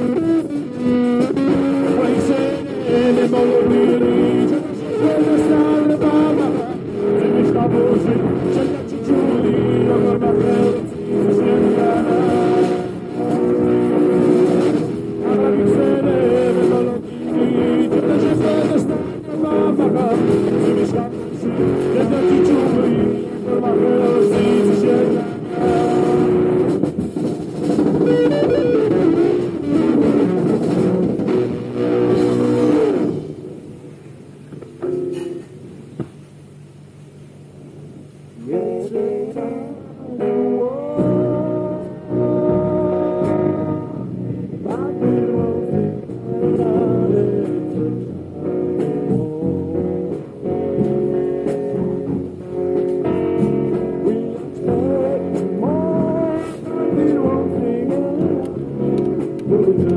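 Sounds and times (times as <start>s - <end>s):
rock band music: 0.0s - 33.7s, 38.5s - 59.9s
electric guitar chords: 0.0s - 59.9s.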